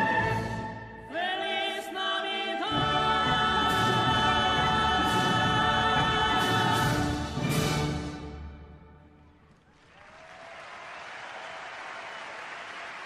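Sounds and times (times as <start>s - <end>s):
choir singing a sustained chord: 0.0s - 7.5s.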